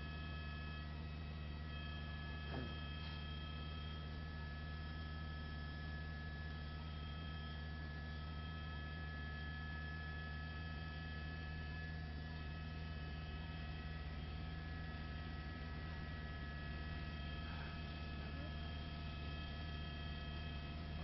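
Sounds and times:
steady electrical hum: 0.0 - 21.0.

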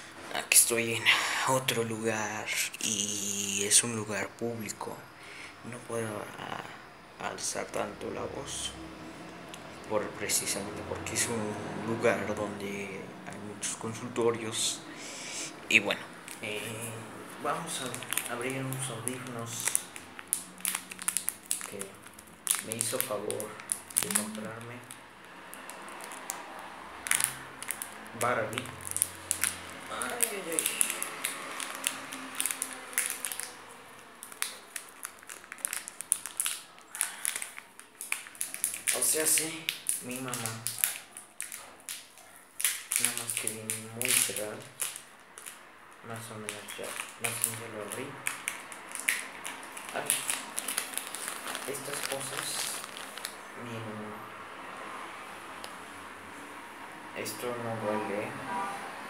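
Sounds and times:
package crinkling: 17.6 - 53.5.

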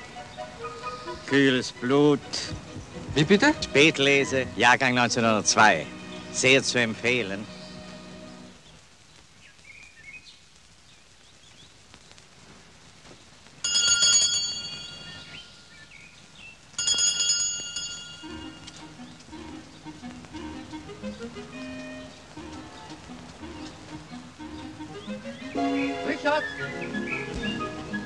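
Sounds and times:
bell ringing: 13.6 - 15.4, 16.8 - 18.8.

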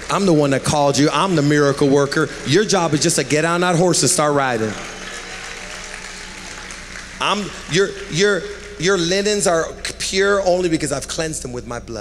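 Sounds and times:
congregation applauding: 0.0 - 11.2.

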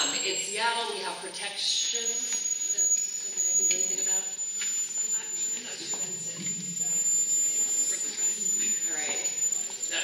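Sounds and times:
woman speaking: 0.0 - 4.4, 5.0 - 9.7
steady high-pitched squeal: 0.0 - 10.0.

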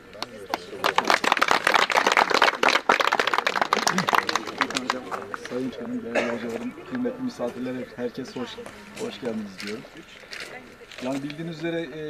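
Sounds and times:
crowd applauding: 0.2 - 5.6.

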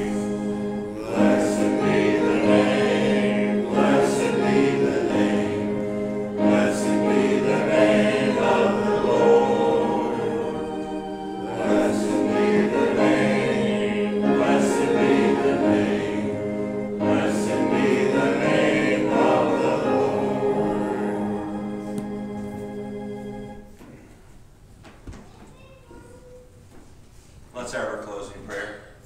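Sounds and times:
choir singing a hymn: 0.0 - 23.7.

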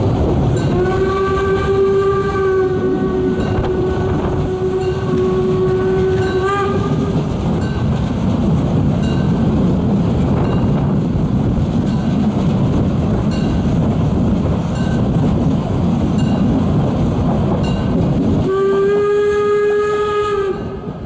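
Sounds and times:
train rumbling: 0.0 - 21.0
wind on microphone: 0.0 - 21.0
steam locomotive whistle: 0.6 - 7.3, 18.4 - 21.0.

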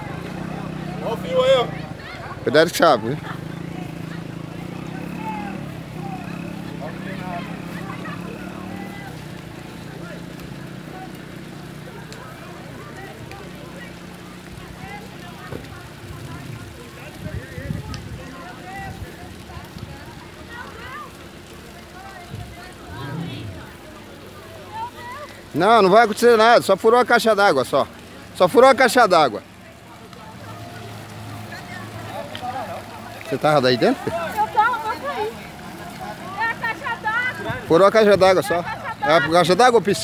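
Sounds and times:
low engine hum: 0.0 - 24.6
distant voices talking: 0.0 - 40.0.

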